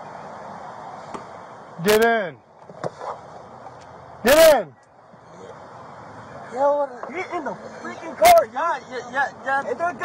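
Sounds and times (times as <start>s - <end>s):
outdoor background noise: 0.0s - 10.0s
man shouting: 4.2s - 4.8s.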